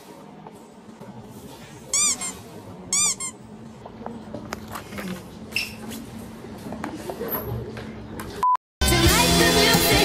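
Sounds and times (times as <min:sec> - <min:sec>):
high squeak sound effect: 0:02.0 - 0:03.4.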